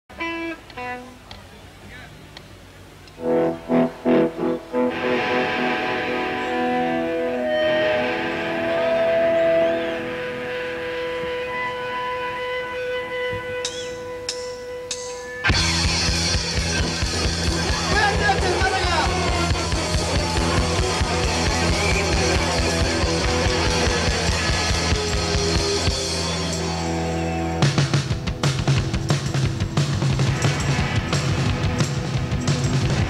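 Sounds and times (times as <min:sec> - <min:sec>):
live rock band playing: 0:00.1 - 0:01.4, 0:03.1 - 0:33.0
electric guitar chords: 0:00.1 - 0:01.6, 0:02.5 - 0:33.0.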